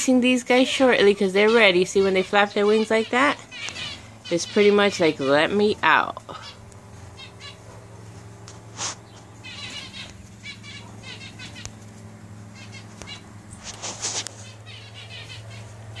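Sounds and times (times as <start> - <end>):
birds chirping: 0.0 - 16.0
low steady hum: 0.0 - 16.0
rustling: 6.9 - 14.7.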